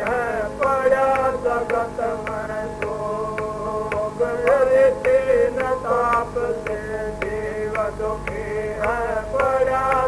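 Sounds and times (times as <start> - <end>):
person singing devotional song: 0.0 - 10.0
sharp percussive clicks: 0.0 - 10.0.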